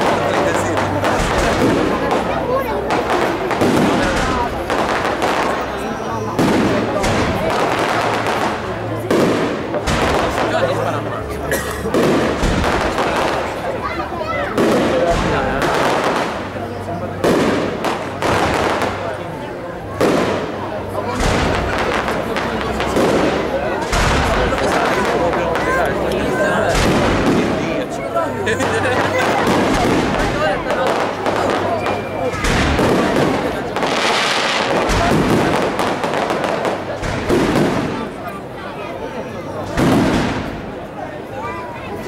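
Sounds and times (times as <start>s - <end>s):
fireworks bursting: 0.0s - 11.2s, 11.9s - 13.8s, 14.5s - 38.6s, 39.5s - 41.0s.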